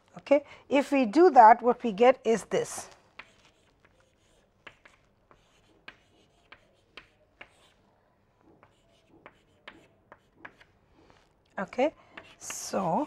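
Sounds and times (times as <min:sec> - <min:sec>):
chalk tapping and scratching on board: 0:03.1 - 0:07.8, 0:08.4 - 0:11.3, 0:12.1 - 0:13.0.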